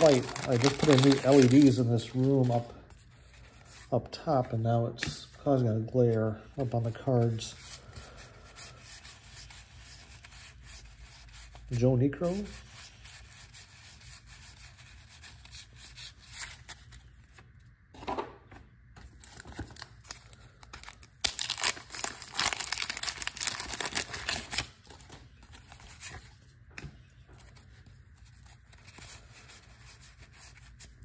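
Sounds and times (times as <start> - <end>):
paper wrapper tearing and crinkling: 0.0 - 2.8, 19.2 - 26.3.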